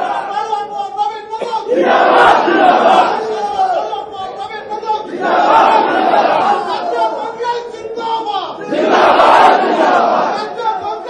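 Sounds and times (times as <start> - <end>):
crowd shouting slogans: 0.0 - 0.4, 1.7 - 3.8, 5.0 - 7.2, 8.6 - 10.6.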